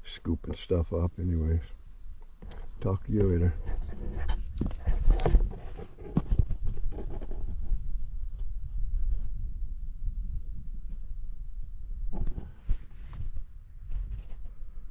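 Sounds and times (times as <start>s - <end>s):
hand handling camera: 2.4s - 7.7s.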